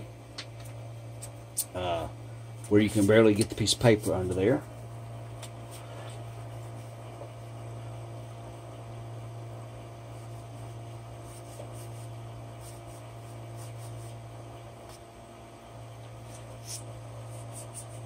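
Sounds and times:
low electrical hum: 0:00.0 - 0:18.0.

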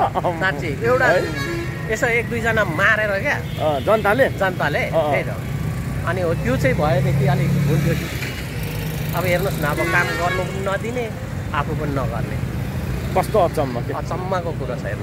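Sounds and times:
man talking: 0:00.0 - 0:08.2, 0:09.1 - 0:12.5, 0:13.1 - 0:15.0
street traffic rumble: 0:00.0 - 0:15.0.

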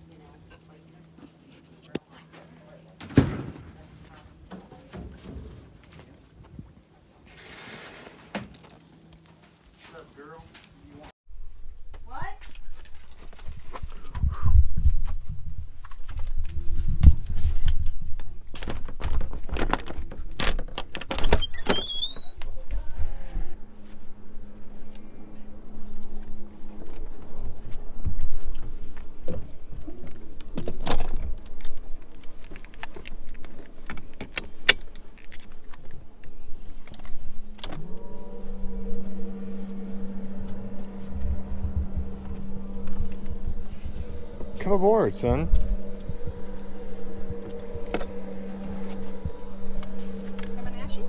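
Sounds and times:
high steady tone: 0:22.4 - 0:28.9, 0:36.6 - 0:51.0
boat engine humming: 0:23.5 - 0:30.7, 0:36.3 - 0:51.0.

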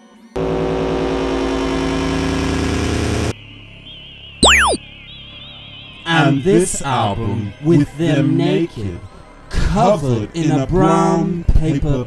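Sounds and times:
faint warbling electronic tone: 0:04.4 - 0:04.8.

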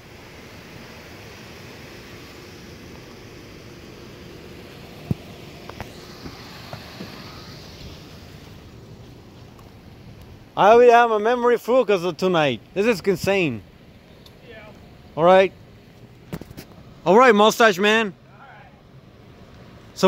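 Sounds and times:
traffic: 0:00.0 - 0:20.0.

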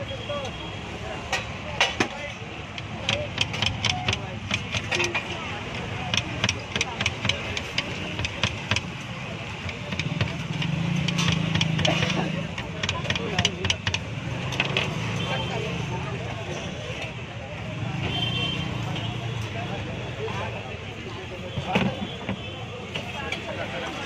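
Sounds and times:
background chatter: 0:00.0 - 0:24.0
knife chopping on a board: 0:02.8 - 0:05.1, 0:06.0 - 0:14.1.

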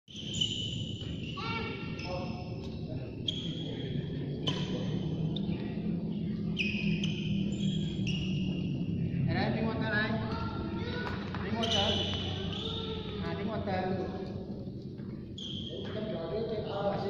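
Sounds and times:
shoes squeaking on court floor: 0:00.1 - 0:05.6, 0:06.5 - 0:08.8, 0:11.4 - 0:13.4, 0:15.1 - 0:16.8
people talking in background: 0:01.4 - 0:07.3.

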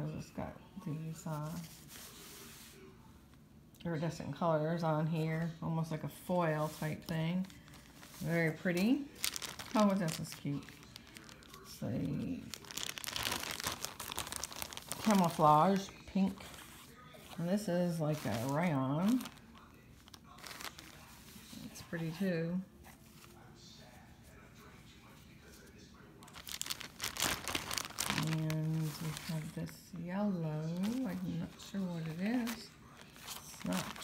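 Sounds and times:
plastic bag crinkling: 0:06.5 - 0:22.2, 0:26.2 - 0:30.0, 0:30.6 - 0:34.0.

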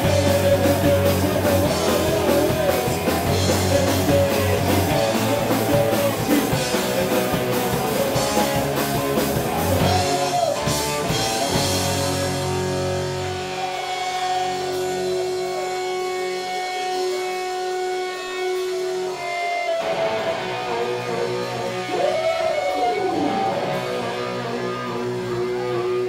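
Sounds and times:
electric guitars ringing notes: 0:00.0 - 0:26.0.

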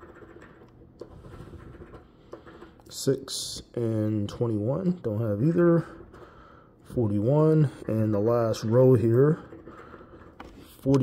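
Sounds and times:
coin scratching lottery ticket: 0:00.0 - 0:03.0.

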